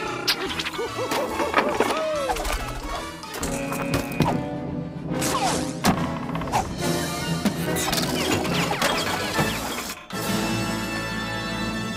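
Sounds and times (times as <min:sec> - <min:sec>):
film score: 0:00.0 - 0:11.9.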